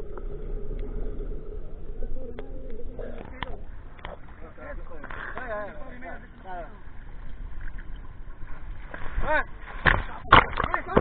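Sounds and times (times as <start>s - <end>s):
bubbles: 0.0s - 4.5s
low underwater hum: 0.0s - 11.0s.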